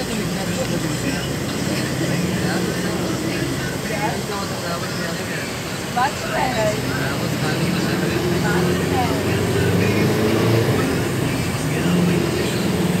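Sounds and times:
road noise: 0.0s - 13.0s
vehicle engine drone: 0.0s - 13.0s.

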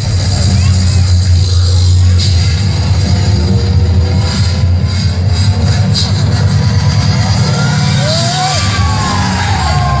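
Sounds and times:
dance music with heavy bass: 0.0s - 10.0s.

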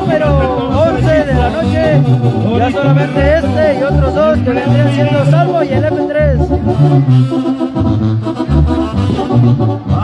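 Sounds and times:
low bass line: 0.0s - 10.0s
sustained horn notes: 0.0s - 10.0s.

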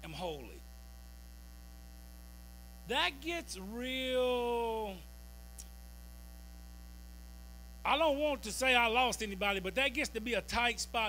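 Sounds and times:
man speaking: 0.0s - 0.6s, 2.8s - 5.0s, 7.9s - 11.0s
mains hum: 0.0s - 11.0s.

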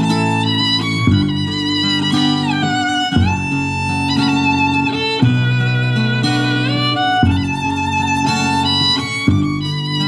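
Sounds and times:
acoustic guitar: 0.0s - 10.0s
fiddle bowing long notes: 0.0s - 10.0s
upright bass: 0.0s - 10.0s.

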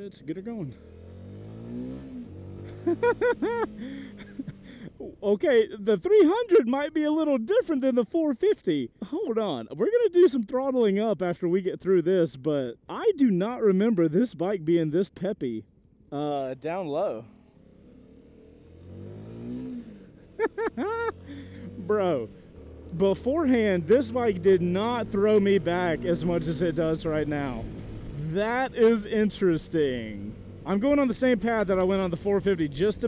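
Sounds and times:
motorcycle engine pulling away: 0.8s - 4.4s, 17.3s - 33.0s
person laughing: 2.6s - 5.2s, 6.2s - 6.8s, 20.2s - 22.0s.

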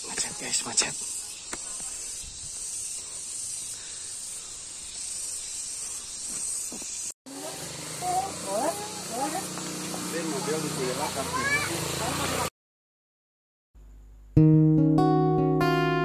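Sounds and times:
high insect drone: 0.0s - 12.3s
children talking: 7.3s - 12.5s.

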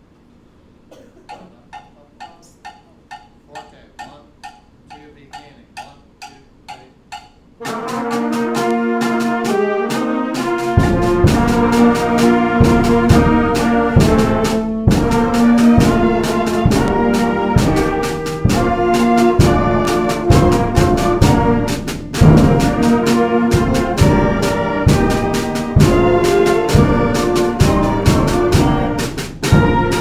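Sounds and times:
concert band playing a march: 7.6s - 30.0s
bass drum beat: 10.7s - 30.0s.

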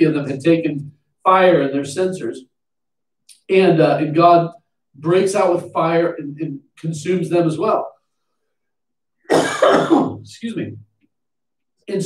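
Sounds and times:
man coughing: 9.3s - 10.3s.

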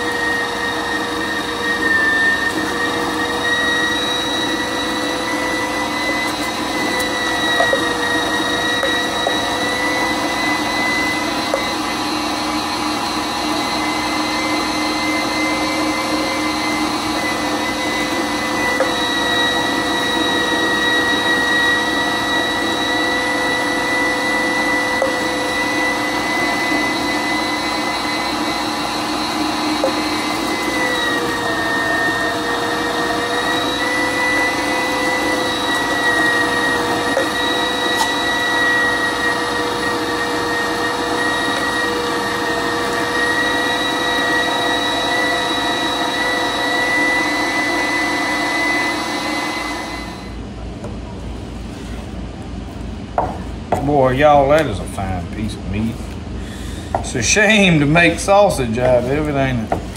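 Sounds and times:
electric meat grinder whining: 0.0s - 50.4s.

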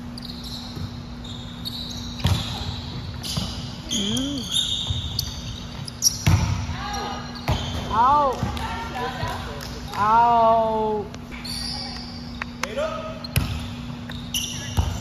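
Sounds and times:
sneakers squeaking on hardwood: 0.1s - 8.6s, 13.1s - 15.0s
players shouting calls: 3.9s - 4.4s
volleyball struck with smacks: 6.2s - 6.7s.

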